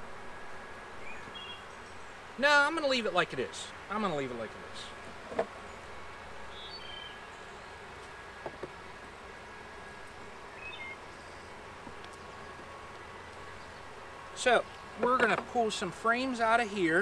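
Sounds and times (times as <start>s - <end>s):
honeybees buzzing: 3.7s - 17.0s.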